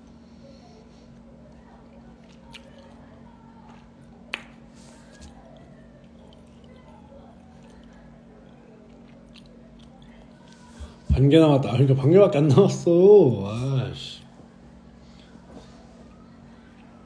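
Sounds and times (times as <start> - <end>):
person chewing: 1.9 - 3.1, 5.0 - 10.7.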